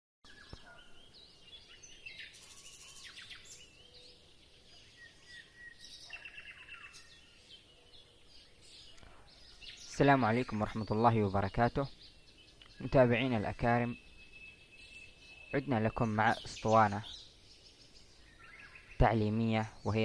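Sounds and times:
faint birdsong chirps and trills: 0.2 - 20.0.

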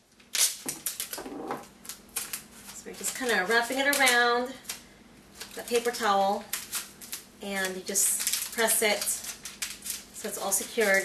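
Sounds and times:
masking tape ripping off roll: 0.2 - 2.6, 6.5 - 10.2.

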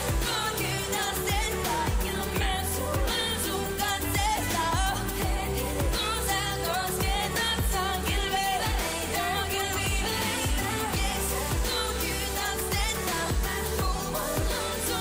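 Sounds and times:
pop song with woman singing: 0.0 - 15.0.

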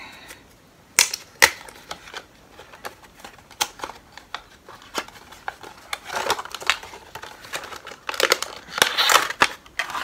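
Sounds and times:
plastic packaging crackling: 1.0 - 10.0.

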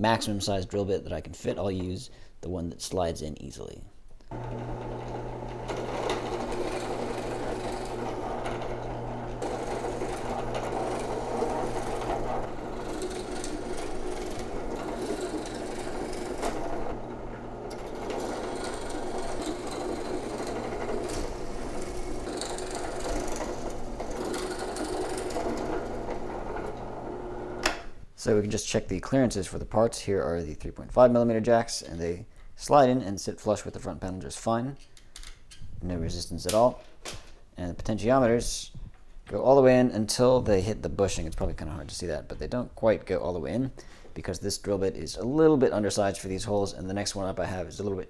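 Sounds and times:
drill bit boring into wood: 4.3 - 27.7
drill press motor hum: 4.3 - 27.7.

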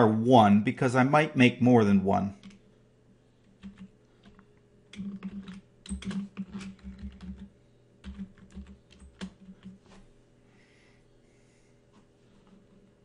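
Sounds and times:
typing on computer keyboard: 3.6 - 9.8.

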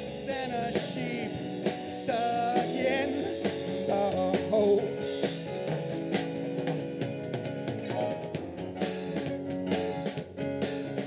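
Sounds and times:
drums: 0.0 - 11.0
electric bass: 0.0 - 11.0
keyboard: 0.0 - 11.0.

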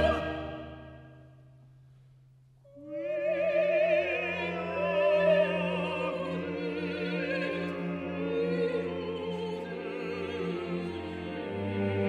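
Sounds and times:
soprano singing: 0.0 - 1.1, 2.7 - 11.5.

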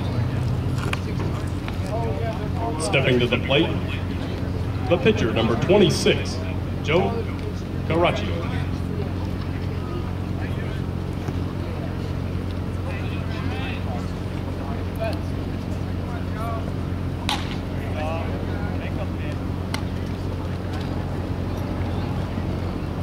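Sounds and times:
faint distant voices: 0.0 - 23.0
steady low hum: 0.0 - 23.0.

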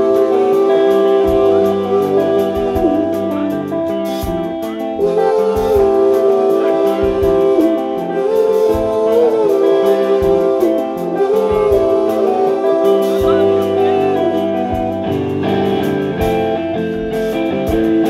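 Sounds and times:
cymbals: 0.0 - 18.0
live band playing: 0.0 - 18.0.

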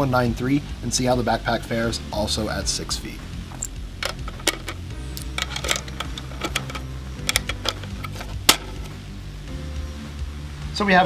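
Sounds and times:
background music: 0.0 - 11.0
metallic clicks loading magazine: 3.6 - 8.8.

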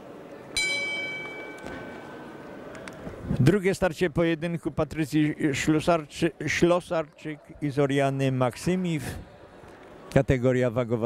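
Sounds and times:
boxing ring bell ringing: 0.6 - 2.5.

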